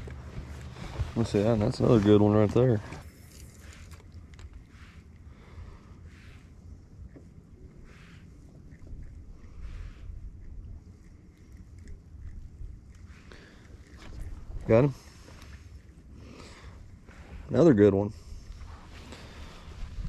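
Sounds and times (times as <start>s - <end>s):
soft hissing water swells: 3.0s - 11.6s, 13.0s - 20.0s
wind rumble on microphone: 6.8s - 13.0s, 17.1s - 20.0s.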